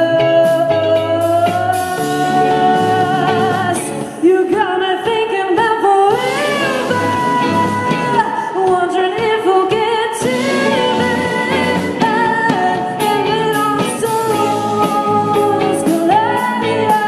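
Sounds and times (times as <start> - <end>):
bass guitar: 0.0 - 5.1, 6.1 - 17.0
drums: 0.0 - 17.0
electric guitars: 0.0 - 17.0
woman singing lead: 0.0 - 17.0.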